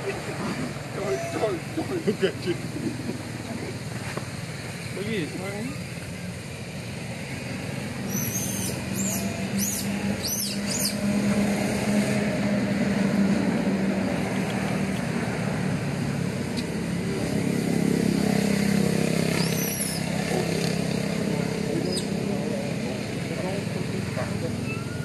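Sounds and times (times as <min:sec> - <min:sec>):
engine droning: 0:00.0 - 0:25.0
high arching chirps: 0:07.5 - 0:11.1, 0:19.3 - 0:20.1.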